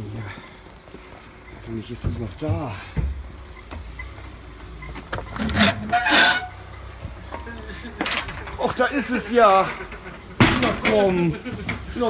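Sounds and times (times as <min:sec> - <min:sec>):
rasping metal scrape: 0:05.4 - 0:06.6.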